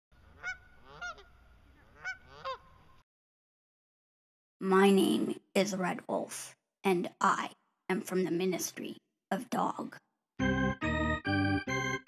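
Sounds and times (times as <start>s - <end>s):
goose honking: 0.3s - 3.0s.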